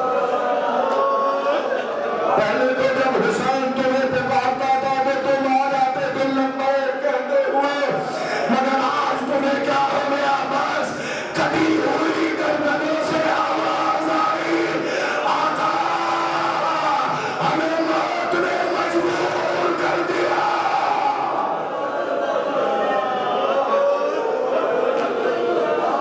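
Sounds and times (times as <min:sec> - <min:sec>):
crowd weeping and wailing: 0:00.0 - 0:26.0
man chanting through a microphone: 0:02.3 - 0:21.4.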